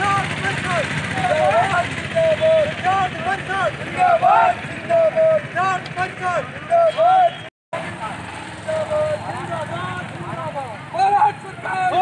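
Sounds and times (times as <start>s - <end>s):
low rumble of street noise: 0.0s - 12.0s
men's raised voices: 0.0s - 12.0s.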